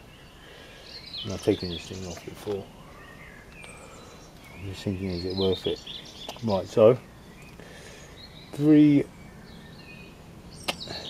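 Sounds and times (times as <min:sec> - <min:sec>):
bird chirps: 0:00.0 - 0:11.0.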